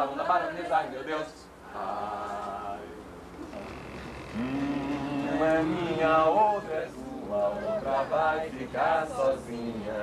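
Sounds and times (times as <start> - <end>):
group singing folk song: 1.7 - 3.0, 4.4 - 10.0.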